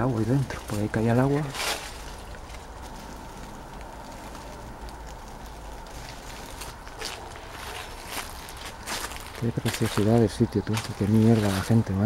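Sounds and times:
footsteps on dry leaves: 0.0 - 12.0
low outdoor rumble: 0.0 - 12.0.

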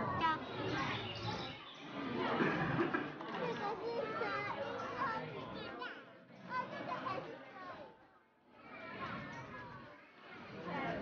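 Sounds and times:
children's voices: 0.0 - 11.0
people chattering: 0.0 - 11.0.

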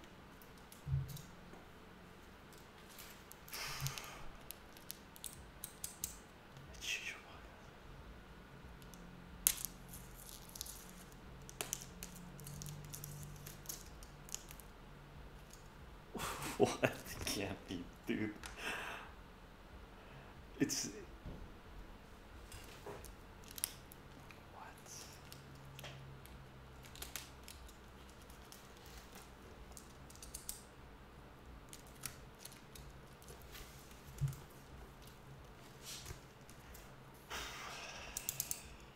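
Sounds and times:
parcel crinkling and clicking: 0.0 - 1.4, 2.4 - 6.7, 8.8 - 14.8, 22.4 - 30.7, 31.6 - 37.0, 38.1 - 38.8
faint low hum: 0.0 - 38.9.

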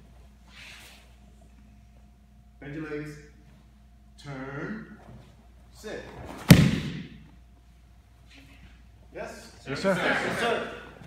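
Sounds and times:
body thudding on mat: 6.3 - 7.2.

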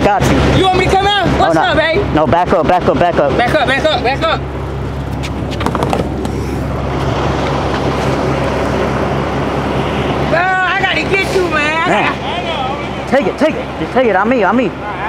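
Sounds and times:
car engine idling: 0.2 - 15.0.

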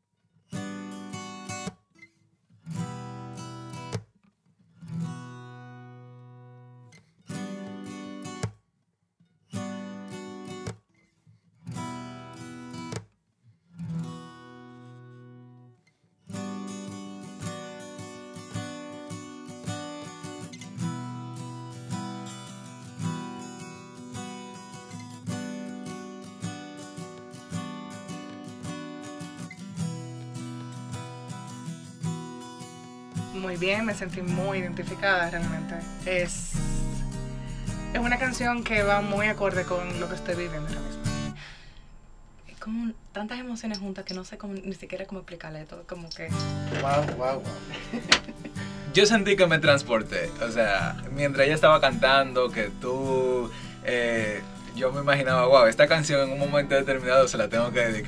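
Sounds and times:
acoustic guitar music: 0.0 - 8.6, 9.2 - 42.6, 43.2 - 58.0.

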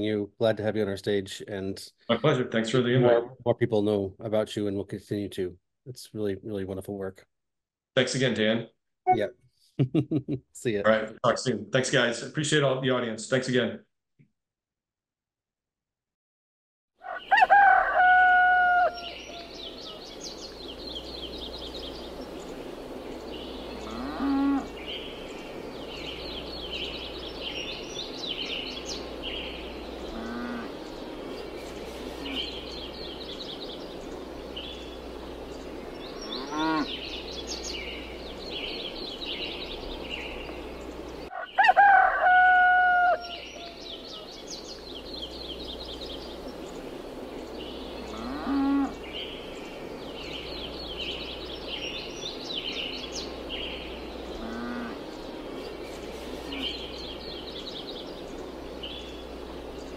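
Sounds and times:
rooster crowing: 17.0 - 20.0, 41.3 - 44.3
small birds chirping: 18.7 - 41.7, 43.2 - 59.9
cattle mooing: 23.8 - 24.7, 30.1 - 30.8, 36.3 - 36.9, 48.1 - 48.9, 54.4 - 55.1.

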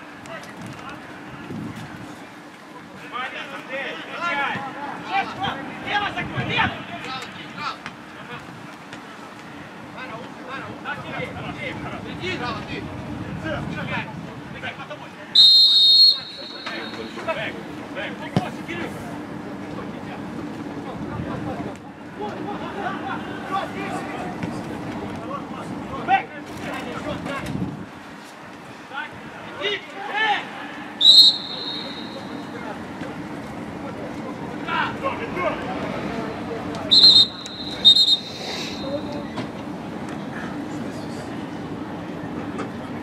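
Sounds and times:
sparse stadium crowd: 0.0 - 43.0
referee's whistle blasts: 15.4 - 17.3, 31.0 - 32.5, 36.9 - 39.1
players shouting: 15.4 - 17.8, 29.4 - 32.9, 36.8 - 39.2.

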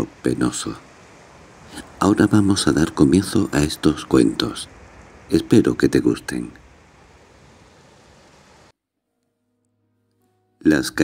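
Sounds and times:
faint sea surf breaking: 0.0 - 8.7.

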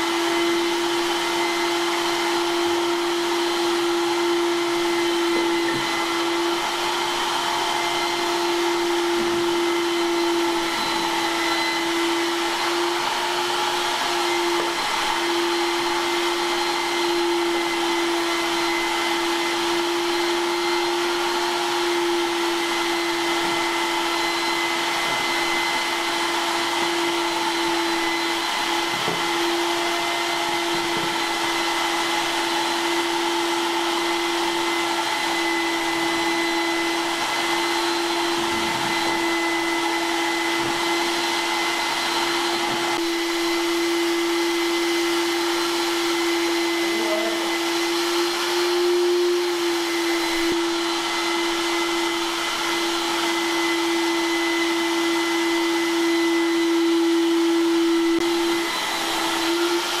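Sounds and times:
shop vacuum motor humming: 0.0 - 60.0.

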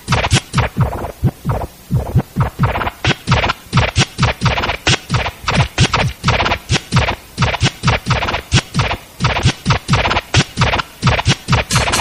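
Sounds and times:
snare and hi-hat hits: 0.0 - 12.0.

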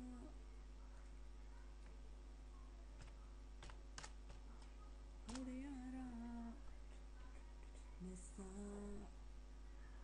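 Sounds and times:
faint room noise: 0.0 - 10.0.

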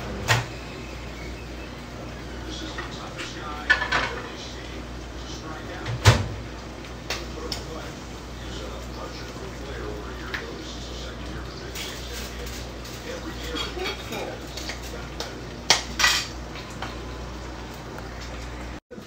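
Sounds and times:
steady low hum: 0.0 - 18.8
plates and cutlery clinking: 2.5 - 4.6, 11.3 - 17.0.

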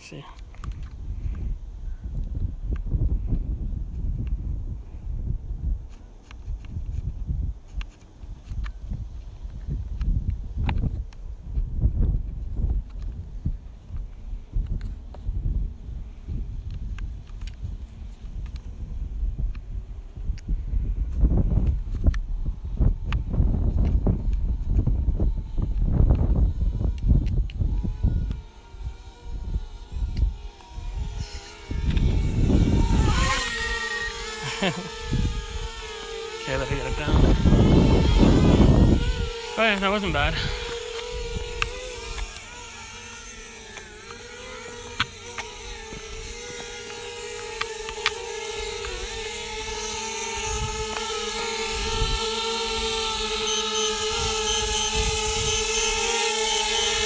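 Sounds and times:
wind buffeting microphone: 0.5 - 57.0
drone propeller whine: 22.5 - 57.0.

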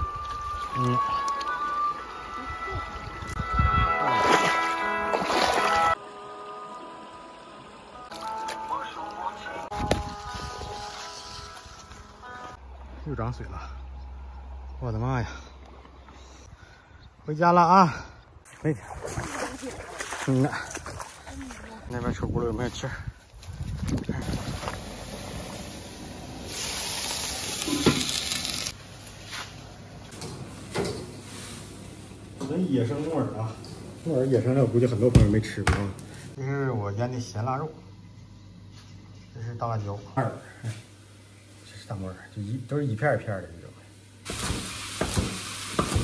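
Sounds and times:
wind rumbling on microphone: 2.8 - 4.0, 21.8 - 25.0
steady bright hiss: 24.2 - 29.8.

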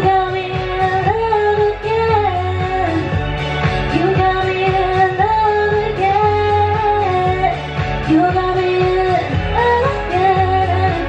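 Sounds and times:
pop karaoke backing track: 0.0 - 11.0.

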